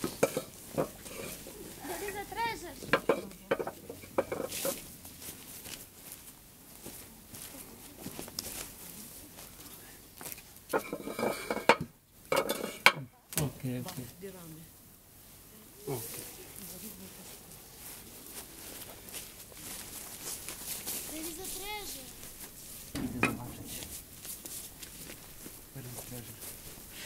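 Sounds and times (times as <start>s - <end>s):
bricks and wood knocking: 2.8s - 4.5s, 23.0s - 24.3s
thump: 22.9s - 24.4s.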